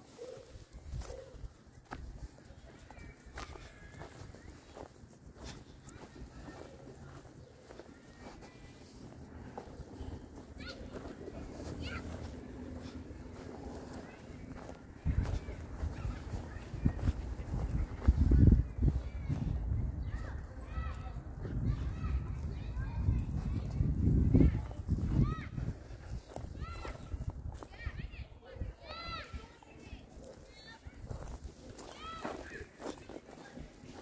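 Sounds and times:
faint distant voices: 0.0s - 34.0s.

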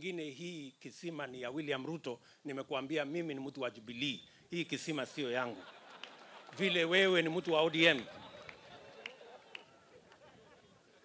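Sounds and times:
faint crowd voices: 6.5s - 11.0s.

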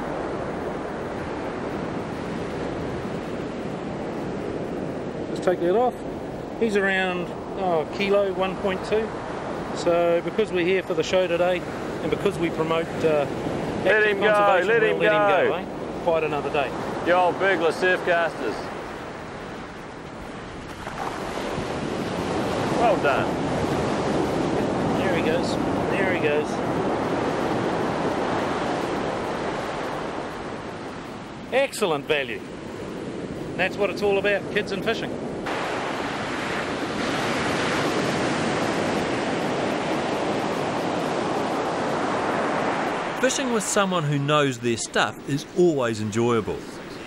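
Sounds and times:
wind rumbling on microphone: 0.0s - 43.2s
surf washing up sand: 0.0s - 47.0s.

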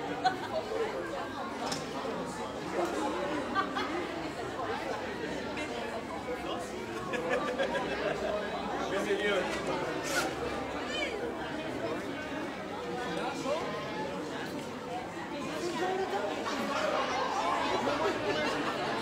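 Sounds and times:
crowd chatter in a large hall: 0.0s - 19.0s.

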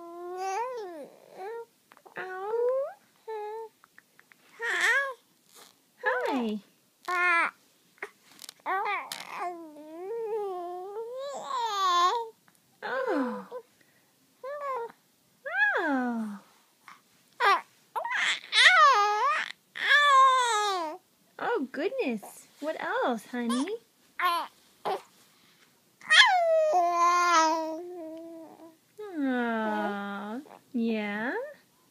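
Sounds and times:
infant cooing: 0.0s - 3.8s, 4.5s - 5.7s, 7.0s - 13.6s, 14.4s - 15.0s, 17.4s - 21.0s, 23.5s - 25.1s, 26.0s - 29.2s
baby squealing: 17.4s - 20.9s, 26.0s - 27.6s.

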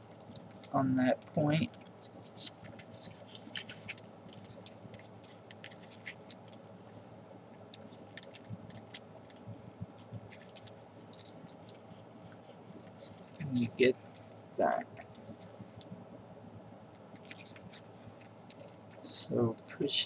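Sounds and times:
paper being folded by hand: 0.0s - 7.1s, 7.7s - 14.2s, 17.1s - 19.1s
paper crinkling: 0.0s - 15.9s, 17.1s - 19.1s.

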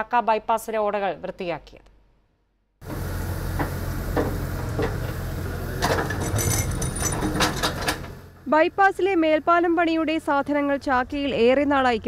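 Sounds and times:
excavator engine rumbling: 2.8s - 8.4s.

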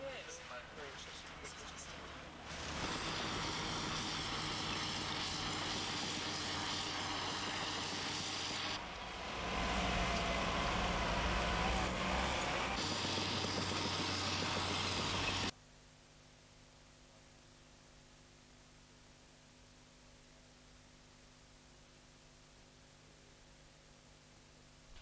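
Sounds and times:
diesel engines running: 0.6s - 15.5s
heavy low rumble: 8.8s - 12.8s.

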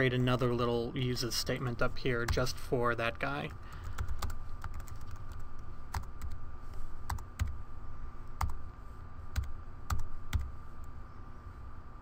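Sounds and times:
typing on computer keyboard: 3.9s - 6.4s, 9.4s - 10.5s.

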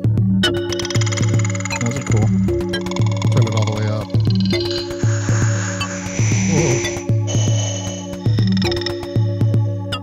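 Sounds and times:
ringing synth tones: 0.6s - 9.3s
hissing granular synth wash: 4.8s - 8.3s.

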